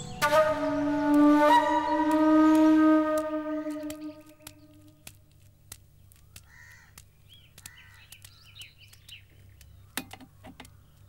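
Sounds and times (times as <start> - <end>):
sustained wind instrument note: 0.0 - 4.7
faint clicks: 3.1 - 11.0
bird cawing and chirping: 6.2 - 11.0.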